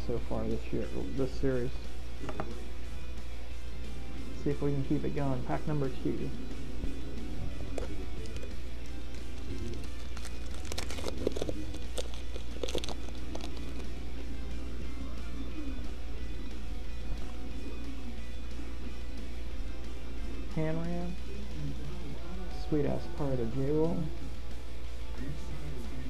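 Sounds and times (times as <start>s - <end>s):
background music: 0.0s - 26.0s
steady low hum: 0.0s - 26.0s
foil wrapper crinkling and tearing: 9.4s - 13.9s.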